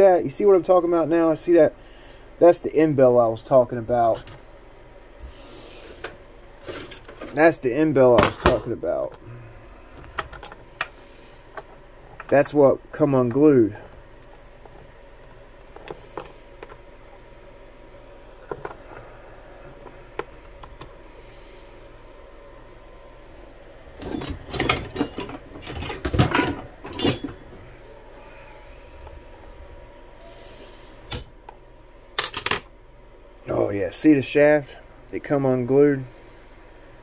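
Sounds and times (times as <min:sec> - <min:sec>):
metal parts clattering: 0:24.0 - 0:27.4.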